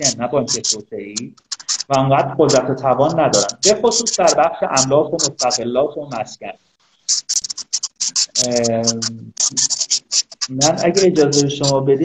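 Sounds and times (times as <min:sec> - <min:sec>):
man's drawn-out voice: 0:00.0 - 0:01.3, 0:01.9 - 0:06.5, 0:08.4 - 0:09.7, 0:10.5 - 0:12.0
crackling audio line bursts: 0:00.0 - 0:12.0.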